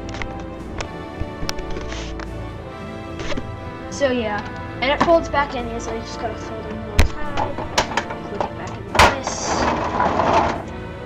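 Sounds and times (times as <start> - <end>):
plastic parts rattling and scraping: 0.0 - 2.2, 7.0 - 10.9.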